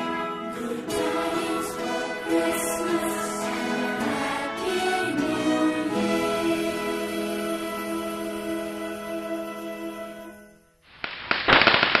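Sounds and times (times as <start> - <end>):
music held chord: 0.0 - 10.8
crackle of rapid sharp pops: 10.9 - 12.0.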